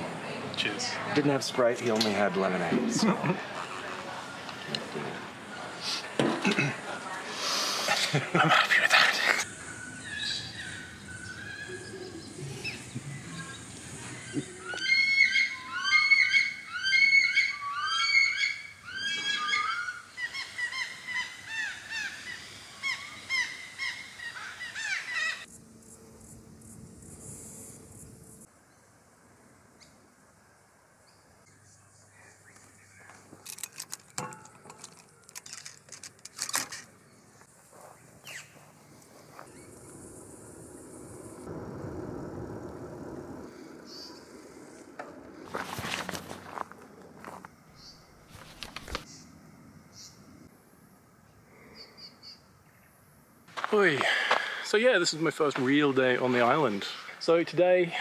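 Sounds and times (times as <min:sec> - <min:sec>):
birds calling: 0:03.0 - 0:25.5, 0:31.4 - 0:50.3, 0:51.7 - 0:58.0.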